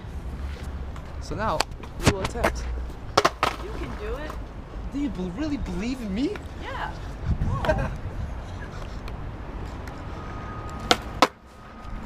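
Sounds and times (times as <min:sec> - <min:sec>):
skateboard wheels rolling on concrete: 0:00.0 - 0:12.0
skateboard wooden clacks: 0:03.2 - 0:04.4.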